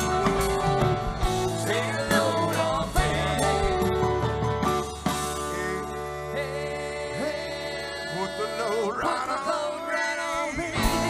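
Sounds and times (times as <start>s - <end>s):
rock band playing: 0.0s - 7.9s, 10.6s - 11.0s
guitar lead with bending notes: 0.0s - 9.4s, 10.6s - 11.0s.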